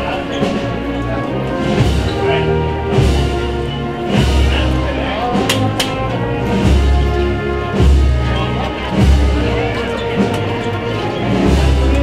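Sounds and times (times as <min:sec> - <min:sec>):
wind band playing a march: 0:00.0 - 0:12.0
sharp percussive strikes: 0:05.4 - 0:06.1.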